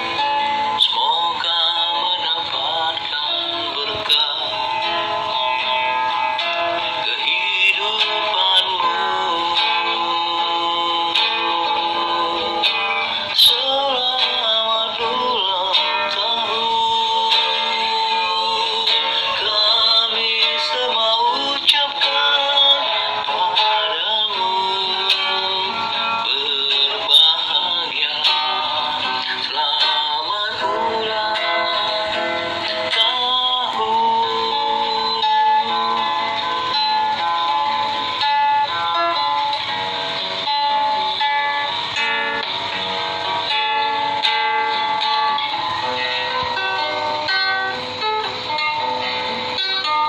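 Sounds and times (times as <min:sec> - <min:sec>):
backing music: 0:00.0 - 0:50.0
instrumental accompaniment: 0:00.0 - 0:50.0
man singing slow song: 0:00.0 - 0:50.0.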